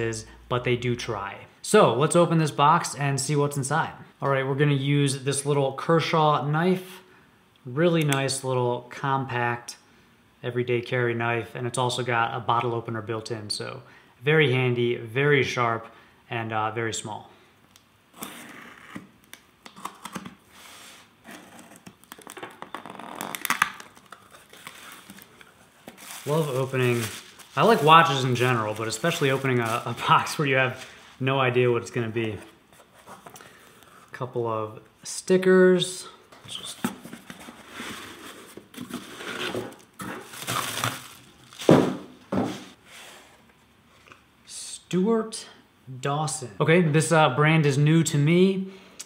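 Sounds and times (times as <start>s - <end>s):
bubble wrap and cardboard rustling: 20.0s - 33.3s, 36.5s - 42.8s
tape tearing: 21.2s - 30.0s, 37.2s - 42.0s.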